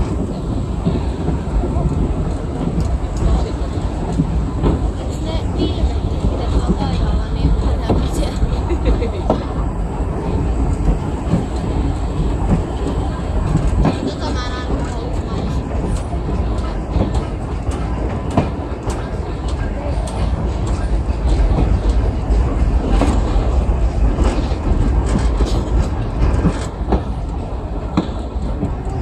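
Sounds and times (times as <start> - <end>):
train rumble: 0.0 - 29.0
wheels clicking over rail joints: 0.0 - 29.0.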